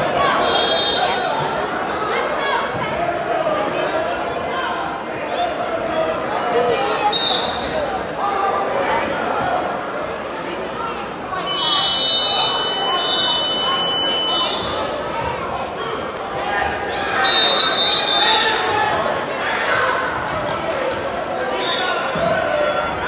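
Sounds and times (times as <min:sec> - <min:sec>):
spectators chattering in gymnasium: 0:00.0 - 0:23.0.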